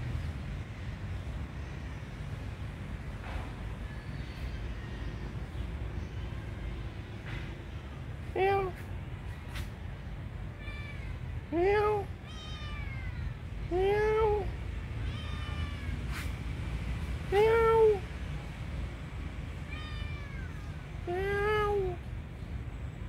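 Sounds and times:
kitten meowing: 10.6s - 16.3s, 19.6s - 22.0s.

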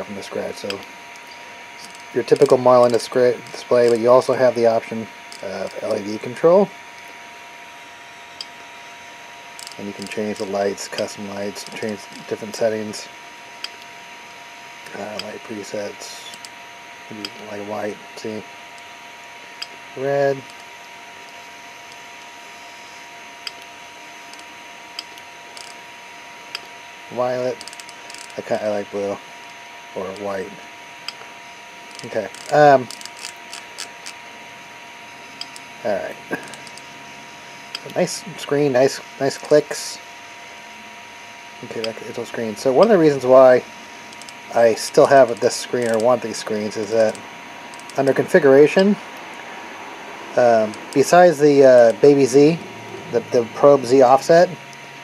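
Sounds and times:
faint steady whine: 0.0s - 55.0s
rotary knob clicking: 0.6s - 4.0s, 24.3s - 25.8s, 27.6s - 28.4s, 31.0s - 34.2s, 35.4s - 35.7s, 36.4s - 36.9s, 44.1s - 44.4s, 45.2s - 46.2s, 47.0s - 48.1s, 50.5s - 51.2s.

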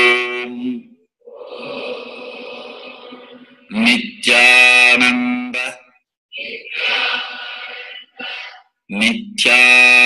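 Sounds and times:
group chanting in unison: 1.2s - 4.0s, 6.4s - 8.7s.

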